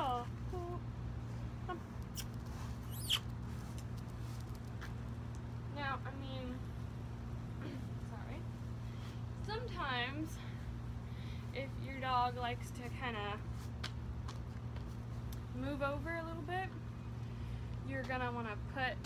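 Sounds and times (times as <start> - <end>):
woman speaking in high phrases: 0.0 - 0.8, 9.4 - 10.4, 15.6 - 16.8, 17.9 - 19.0
steady low hum: 0.0 - 19.0.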